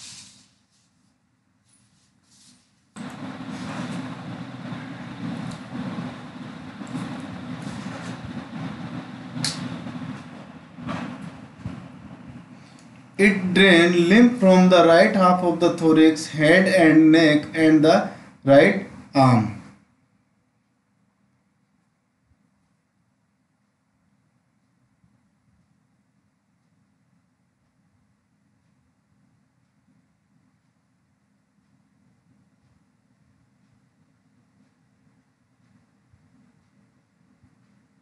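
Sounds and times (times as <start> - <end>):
low hum: 3.0 - 19.7
steady rumbling: 3.0 - 19.8
sharp clicks: 9.4 - 9.8.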